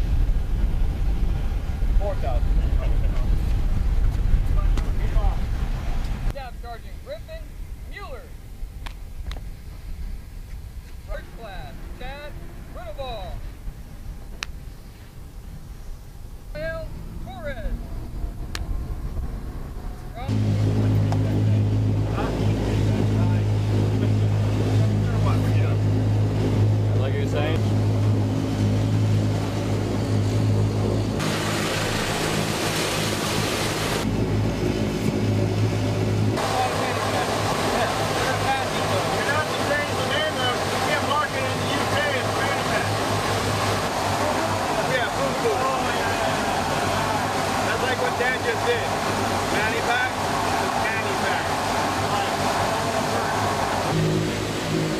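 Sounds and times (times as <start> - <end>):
propeller aircraft engines droning: 0.0 - 54.9
voices talking: 11.0 - 13.6, 16.5 - 27.7, 36.4 - 54.0.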